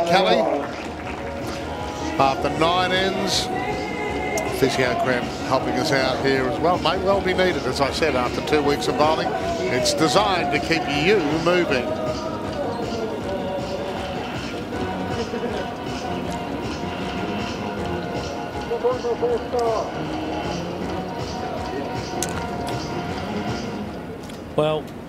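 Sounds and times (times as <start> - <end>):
faint background music: 0.0 - 25.0
murmur of spectators: 0.0 - 25.0.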